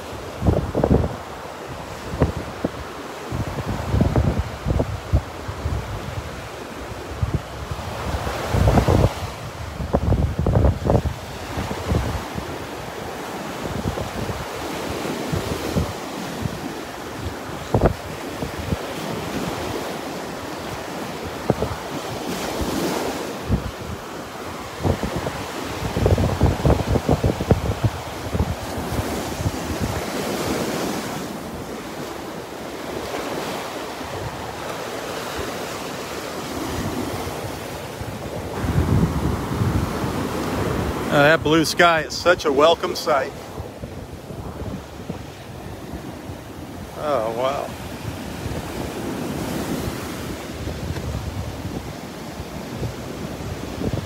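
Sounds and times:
surf breaking on beach: 0.0s - 54.0s
wind buffeting microphone: 0.0s - 54.0s.

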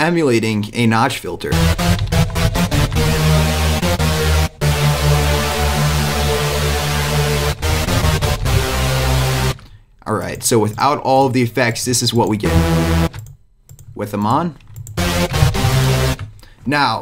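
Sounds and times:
synth saw-wave chords: 1.5s - 9.7s, 12.4s - 13.2s, 15.0s - 16.3s.

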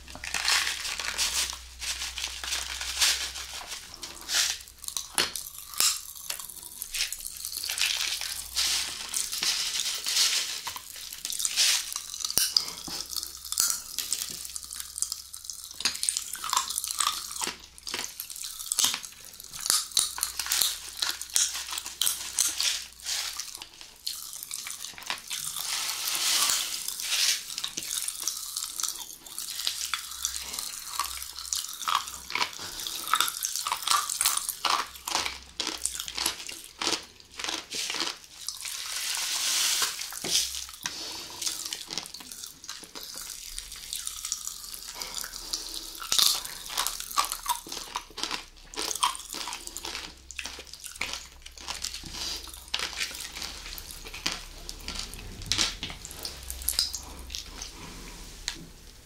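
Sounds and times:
popping candy crackling: 0.0s - 57.5s
wet squelching of gel candy: 0.0s - 59.0s.

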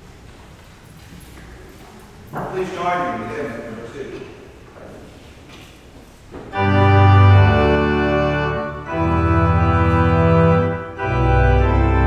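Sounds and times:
footsteps on hard floor: 4.8s - 6.6s.

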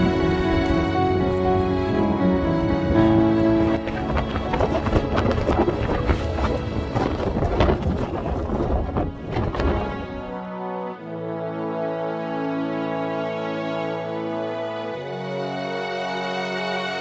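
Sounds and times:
wind buffeting microphone: 0.0s - 10.4s
background music: 0.0s - 17.0s.

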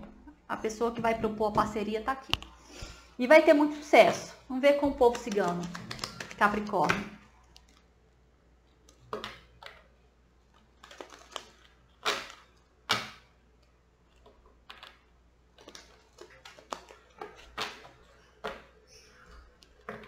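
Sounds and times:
cards being shuffled: 4.8s - 6.8s, 10.5s - 13.2s, 14.1s - 18.8s.

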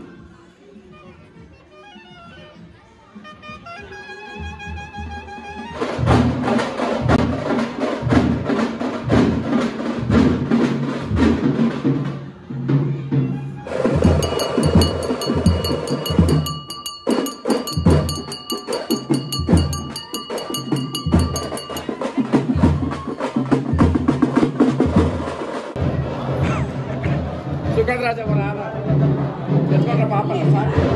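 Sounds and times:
fast drumming: 13.7s - 25.8s
ringing bell-like tone: 14.0s - 23.5s.

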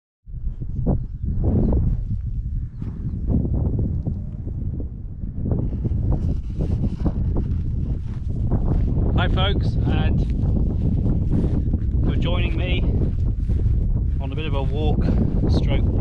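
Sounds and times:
wind noise on microphone: 0.3s - 16.0s
footsteps through rough grass: 6.1s - 9.4s, 10.1s - 15.2s.

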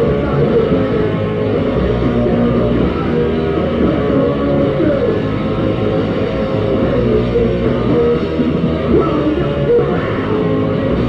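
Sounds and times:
hardcore punk band playing: 0.0s - 11.0s.

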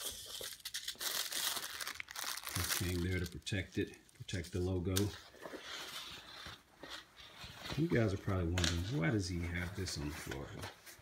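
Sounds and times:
rustling of canvas clothing: 5.4s - 11.0s.

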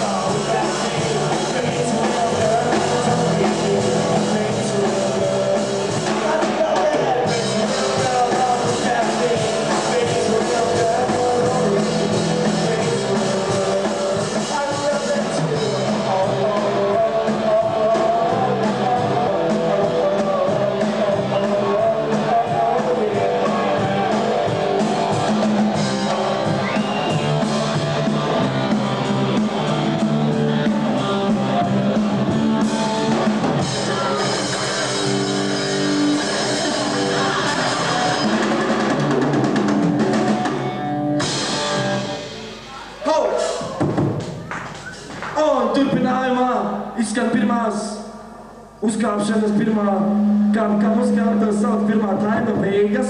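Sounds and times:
rock band playing: 0.0s - 46.9s, 48.9s - 53.0s.

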